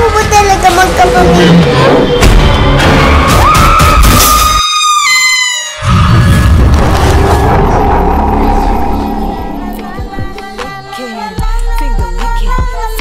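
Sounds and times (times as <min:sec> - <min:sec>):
low rumbling music: 0:00.0 - 0:04.2, 0:05.9 - 0:13.0
deep booming hits: 0:01.6 - 0:04.2, 0:06.0 - 0:10.8.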